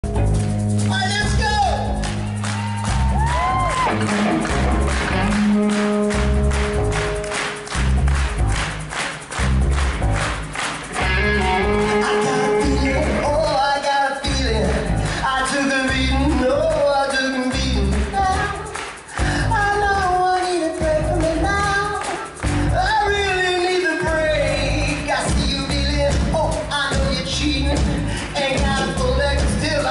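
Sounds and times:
electric guitars: 0:00.0 - 0:23.3
bass guitar: 0:00.0 - 0:29.9
live band playing: 0:00.0 - 0:29.9
person singing long notes: 0:11.2 - 0:18.8
drums with steady beat: 0:18.1 - 0:29.9.

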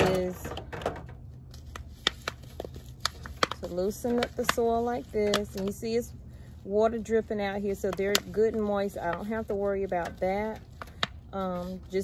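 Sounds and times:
plastic cup crackling: 0:00.0 - 0:12.0.

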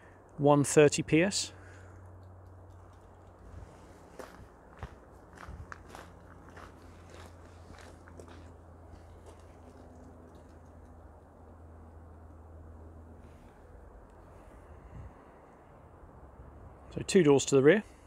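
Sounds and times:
footsteps crunching on gravel: 0:03.4 - 0:09.9.

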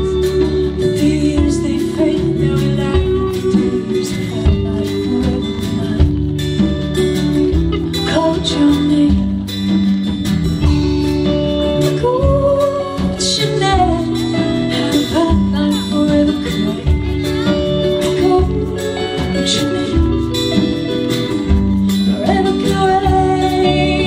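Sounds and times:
live band playing: 0:00.0 - 0:24.0.

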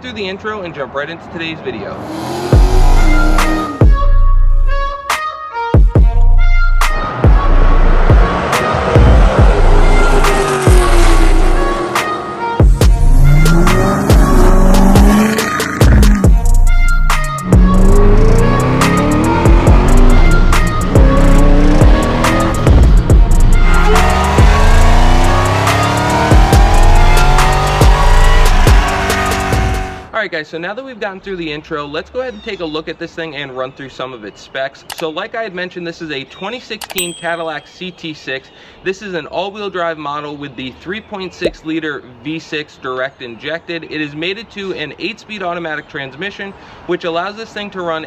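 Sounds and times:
car engines revving: 0:00.7 - 0:04.8, 0:06.7 - 0:30.1
music with a heavy beat: 0:02.5 - 0:11.2, 0:12.0 - 0:30.0.

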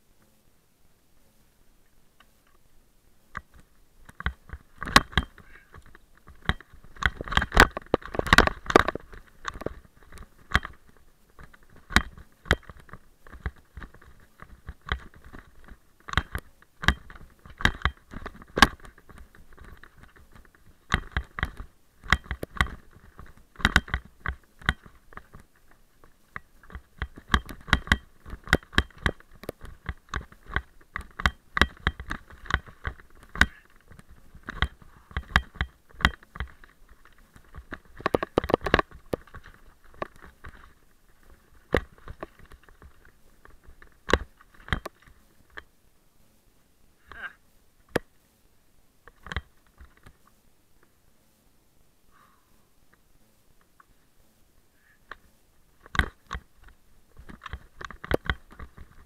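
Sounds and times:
mountain bike rattling over rocks: 0:03.4 - 0:45.7, 0:49.1 - 0:50.3, 0:55.8 - 0:59.0.

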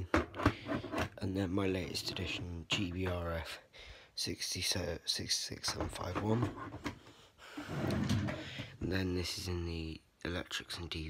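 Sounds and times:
plastic drawer sliding shut: 0:07.7 - 0:08.7.

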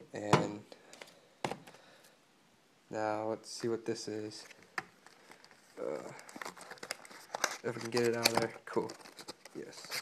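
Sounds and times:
packaging rustling and crinkling: 0:04.4 - 0:10.0.

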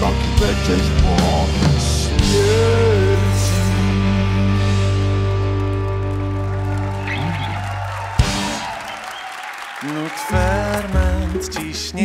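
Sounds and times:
music: 0:00.0 - 0:12.0
audience applause: 0:05.0 - 0:11.9.

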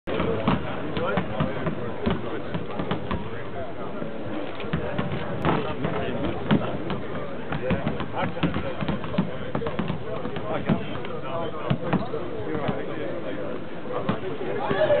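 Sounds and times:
basketballs bouncing on hardwood: 0:00.1 - 0:03.3, 0:04.7 - 0:12.8.

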